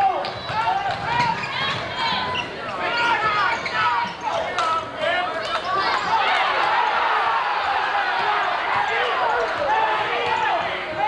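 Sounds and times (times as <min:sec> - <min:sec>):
voices echoing in gym: 0:00.0 - 0:11.0
sneakers squeaking on gym floor: 0:00.2 - 0:04.5.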